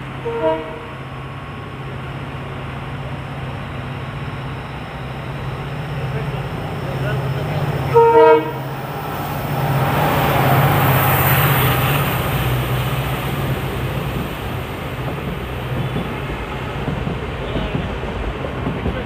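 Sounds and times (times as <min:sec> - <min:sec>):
locomotive engine hum: 0:00.0 - 0:19.0
rumble of train coaches rolling: 0:00.0 - 0:19.0
locomotive horn blast: 0:00.2 - 0:01.0, 0:07.8 - 0:08.8.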